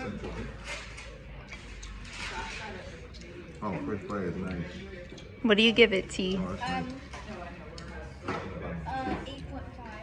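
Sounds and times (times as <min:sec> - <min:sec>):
faint voices of diners: 0:00.0 - 0:10.0.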